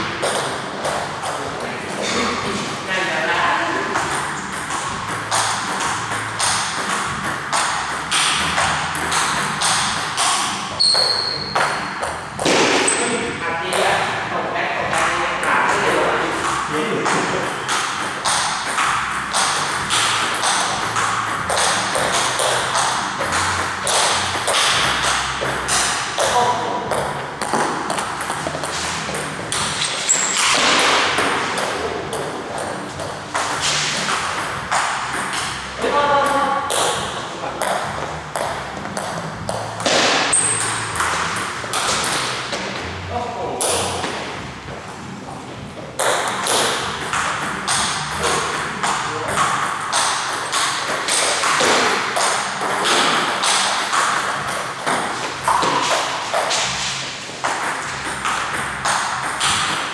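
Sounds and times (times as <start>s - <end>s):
table tennis ball ticking: 3.8s - 13.1s, 14.8s - 42.6s, 46.0s - 59.9s.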